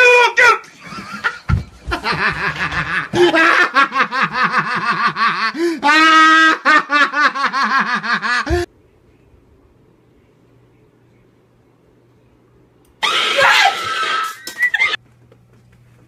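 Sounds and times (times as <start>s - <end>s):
person laughing hard: 0.8s - 8.7s.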